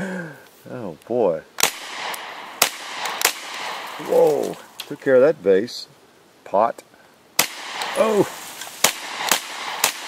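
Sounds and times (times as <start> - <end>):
rifle shots with echo: 1.6 - 4.7, 7.4 - 10.0.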